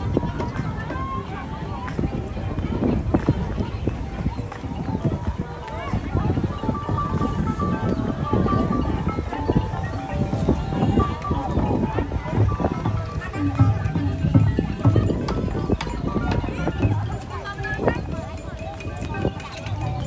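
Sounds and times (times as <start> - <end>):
people talking: 0.0 - 20.0
music playing: 6.2 - 20.0.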